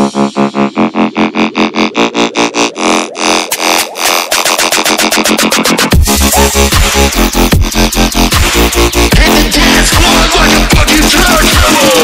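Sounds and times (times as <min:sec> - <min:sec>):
pulsing synth chord roll: 0:00.0 - 0:09.2.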